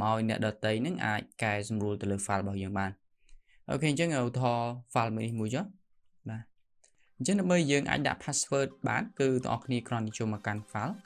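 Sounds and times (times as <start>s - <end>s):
man speaking: 0.0s - 3.0s, 3.7s - 6.5s, 7.2s - 11.0s.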